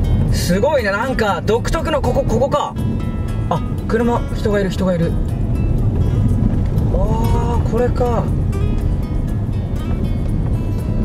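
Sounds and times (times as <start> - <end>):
background music: 0.0 - 11.0
car engine and tyres rumbling: 0.0 - 11.0.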